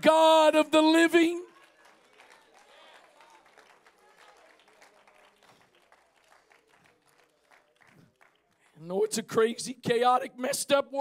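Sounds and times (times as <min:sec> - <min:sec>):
faint scattered clapping: 0:00.0 - 0:08.8.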